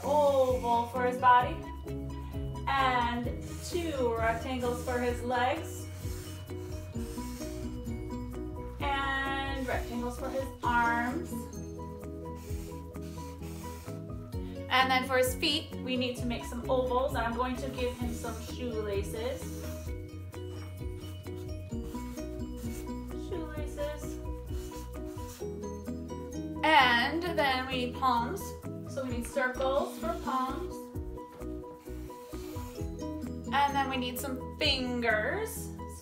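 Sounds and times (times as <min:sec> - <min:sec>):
quiet background music: 0:00.0 - 0:36.0
marker rubbing on paper: 0:03.7 - 0:08.2, 0:09.2 - 0:11.5, 0:12.2 - 0:14.2, 0:17.6 - 0:25.8, 0:29.3 - 0:30.7, 0:31.7 - 0:33.4.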